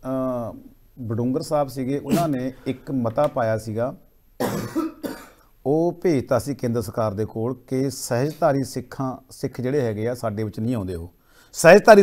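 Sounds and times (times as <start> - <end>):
man talking: 0.0 - 4.1, 5.6 - 12.0
man coughing: 2.0 - 2.6, 4.4 - 5.4.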